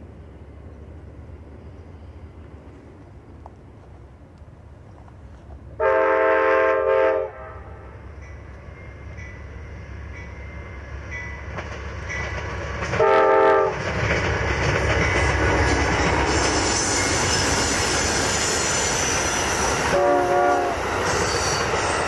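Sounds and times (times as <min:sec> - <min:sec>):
train rumbling past on rails: 0:00.0 - 0:22.0
train air horn blasts: 0:05.8 - 0:08.0, 0:13.0 - 0:13.8, 0:16.4 - 0:22.0.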